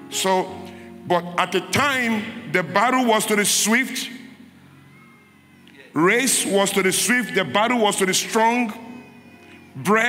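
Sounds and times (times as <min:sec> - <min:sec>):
man preaching over amplification: 0:00.0 - 0:04.4, 0:05.7 - 0:09.2, 0:09.8 - 0:10.0.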